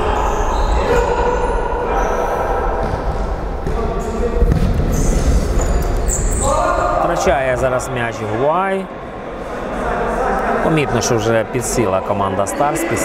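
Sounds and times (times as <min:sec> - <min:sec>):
ball kicked and bouncing: 0:04.4 - 0:05.0.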